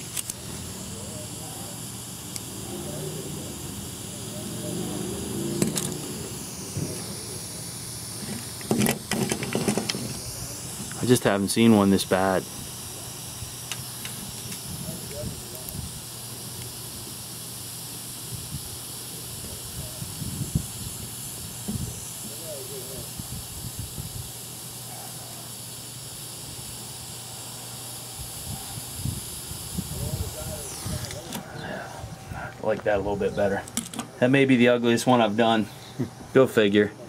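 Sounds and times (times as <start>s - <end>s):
soldering iron hissing: 0.0s - 37.0s.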